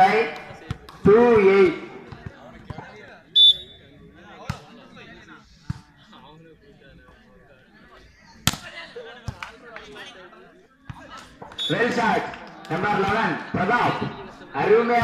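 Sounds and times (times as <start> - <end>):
voices in background: 0.0 - 15.0
shrill whistle blast: 3.4 - 3.8.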